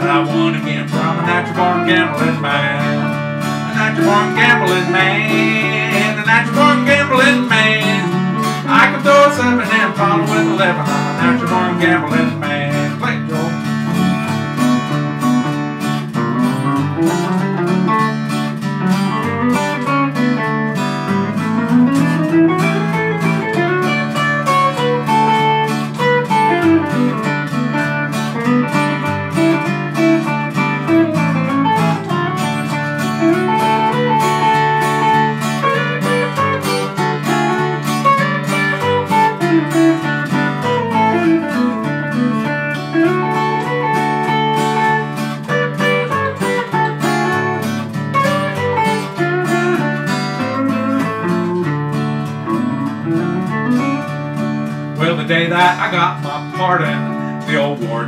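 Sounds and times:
acoustic guitar strumming chords: 0.0s - 58.0s
guitar single-note lead runs: 0.0s - 58.0s.

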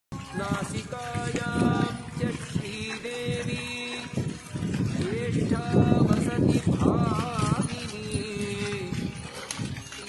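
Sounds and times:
cattle hooves clip-clopping in mud: 0.1s - 10.0s.

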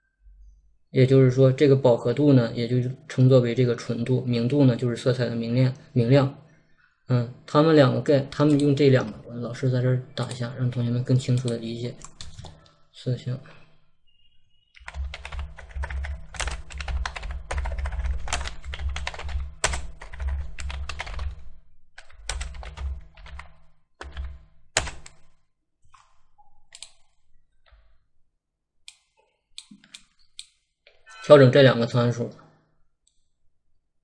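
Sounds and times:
keyboard typing: 8.3s - 9.2s, 10.2s - 12.6s, 14.8s - 27.2s.

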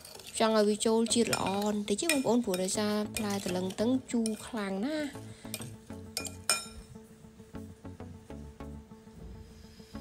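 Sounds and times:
background music: 0.0s - 10.0s
metal spoon clinking on glass bowl: 1.1s - 4.6s, 5.5s - 6.8s.

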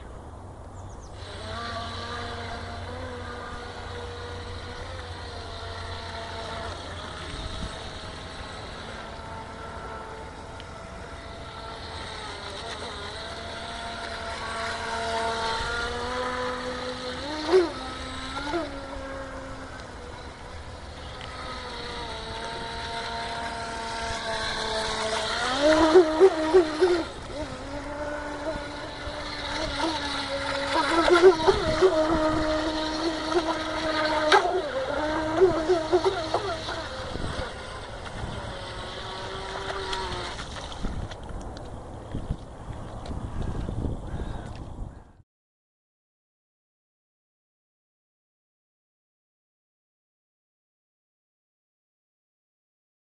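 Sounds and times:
electric motor whine: 0.3s - 45.0s.

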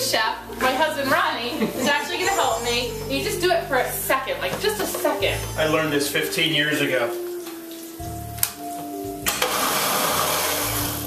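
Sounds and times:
blender motor crushing tomatoes: 9.2s - 11.0s.

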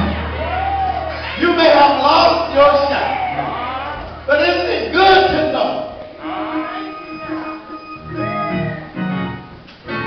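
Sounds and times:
voice gliding: 6.0s - 9.0s
church organ holding a note: 6.2s - 9.5s.

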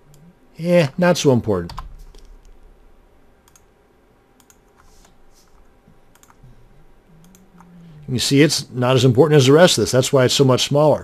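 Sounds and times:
mouse clicks: 4.4s - 5.2s, 6.1s - 6.4s
keyboard keystrokes: 6.1s - 6.4s.

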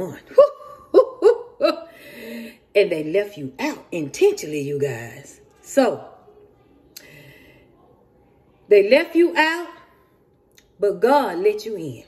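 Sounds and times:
woman laughing: 0.2s - 2.5s.

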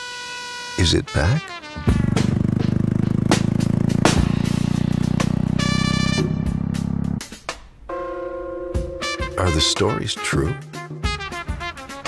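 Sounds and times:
motorcycle engine running: 1.8s - 7.2s
music with sharp hits: 1.8s - 7.8s.

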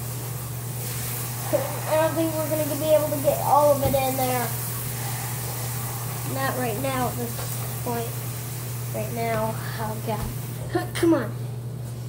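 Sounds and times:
child speaking: 1.5s - 4.6s, 6.3s - 8.2s, 8.9s - 11.4s.

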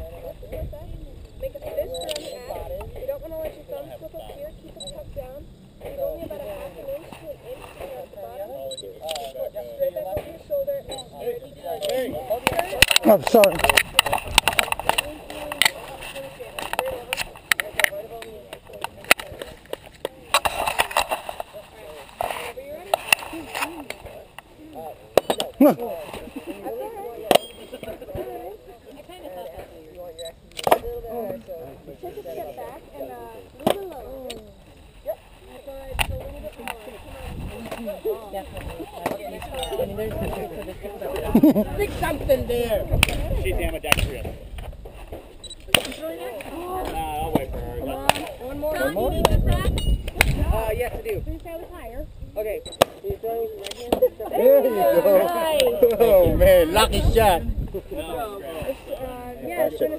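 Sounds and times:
faint voices: 0.0s - 59.9s
people talking indistinctly: 0.0s - 59.9s
sharp crack: 43.0s - 44.2s.

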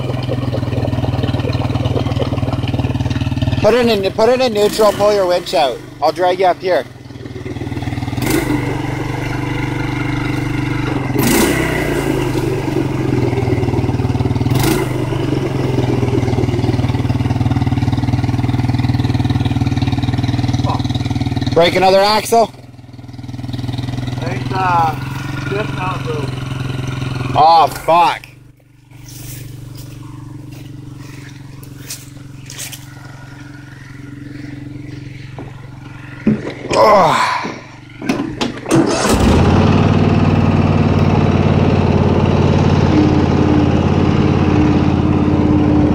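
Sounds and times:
atv engine revving: 0.0s - 45.9s.

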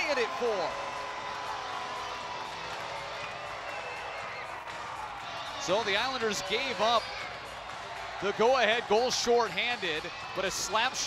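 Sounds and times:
crowd cheering and applauding: 0.0s - 11.0s.

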